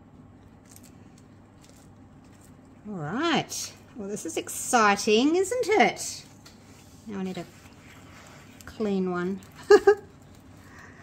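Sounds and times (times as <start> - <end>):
paper towel rustling: 3.4 - 11.0.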